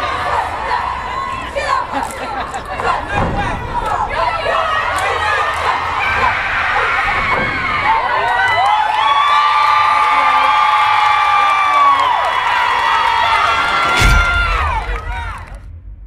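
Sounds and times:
crowd cheering and screaming: 0.0s - 15.6s.

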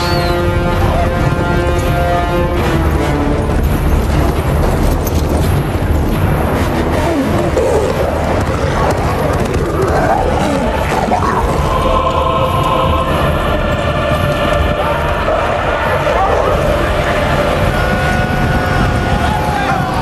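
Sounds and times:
animals charging: 0.0s - 20.0s
film score music: 0.0s - 20.0s
beasts growling: 6.2s - 18.9s.

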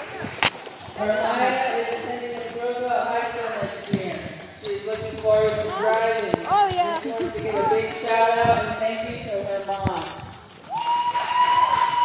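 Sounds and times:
people talking in gymnasium: 0.0s - 12.0s.

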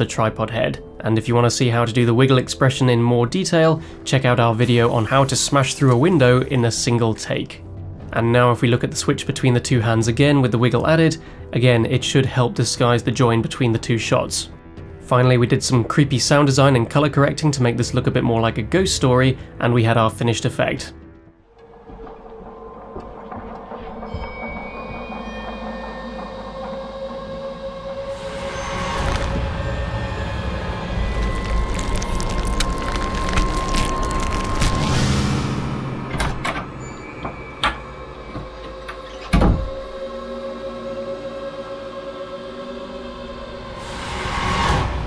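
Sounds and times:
eerie drone: 21.4s - 45.0s
noisy swell: 26.0s - 39.1s, 39.8s - 45.0s.

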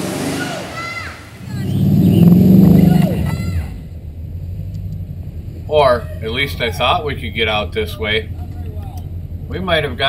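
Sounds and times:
vehicle engine revving: 0.0s - 10.0s
voices: 0.2s - 4.0s, 4.7s - 10.0s.

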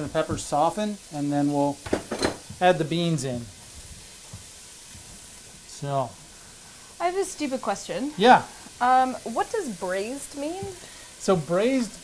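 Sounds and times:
vegetables sizzling in oil: 0.0s - 12.0s.

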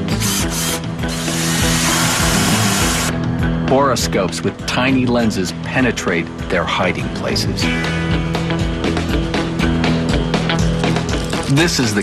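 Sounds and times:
background music with sustained notes: 0.0s - 12.0s
power drill boring into wood: 0.1s - 3.1s.

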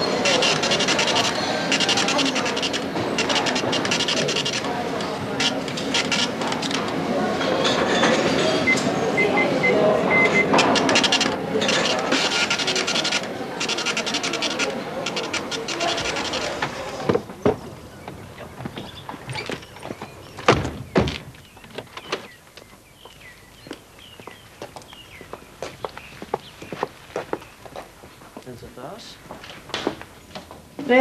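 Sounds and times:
receipt printer rattling: 0.0s - 8.7s, 10.1s - 17.2s.

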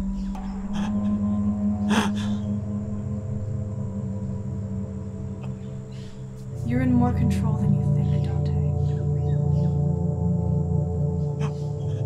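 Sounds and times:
low musical drone: 0.0s - 12.0s.

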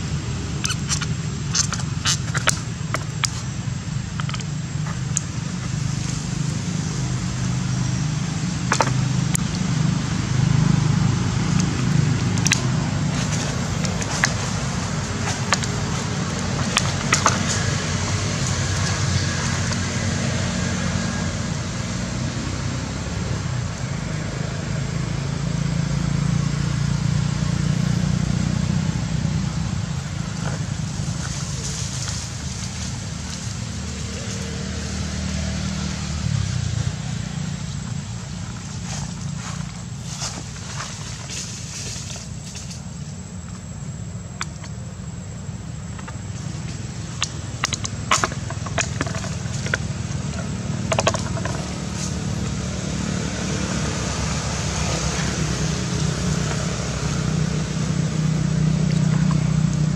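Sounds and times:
steady low rumble: 0.0s - 34.5s.

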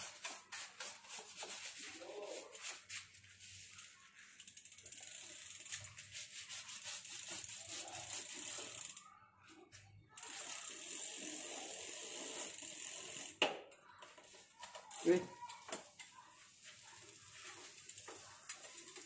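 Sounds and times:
bicycle freewheel ticking: 4.4s - 9.1s, 10.1s - 13.5s, 14.6s - 19.0s.

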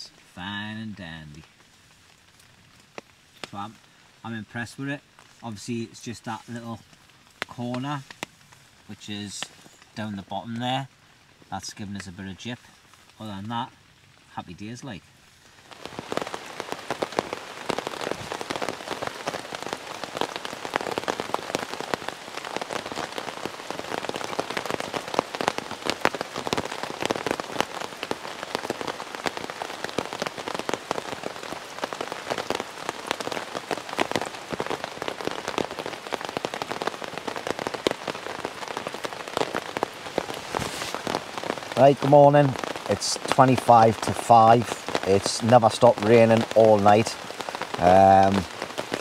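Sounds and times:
rain on a tent: 0.0s - 49.0s.

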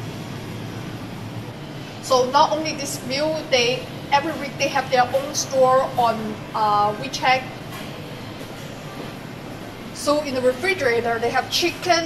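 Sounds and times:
shopping mall background noise: 0.0s - 12.0s.

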